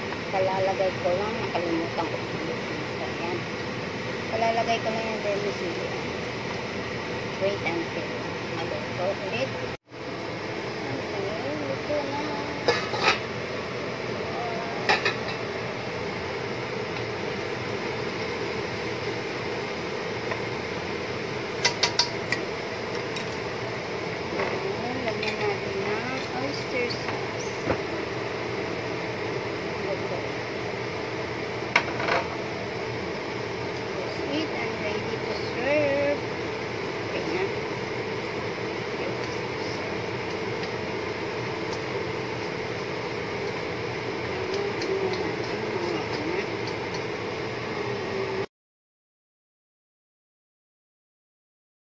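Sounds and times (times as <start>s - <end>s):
utensils clinking against a wok: 21.6s - 22.4s.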